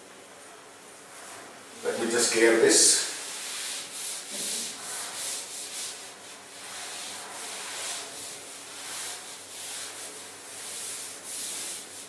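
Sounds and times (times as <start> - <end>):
duster rubbing on blackboard: 1.1 - 12.0.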